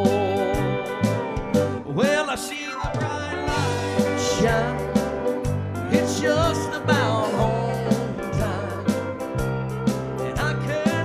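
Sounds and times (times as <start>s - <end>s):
live country gospel music: 0.0s - 11.0s
piano: 0.0s - 11.0s.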